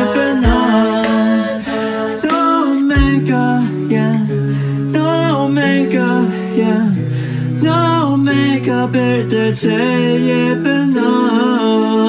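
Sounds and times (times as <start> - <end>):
vocal ensemble singing chords: 0.0 - 12.0.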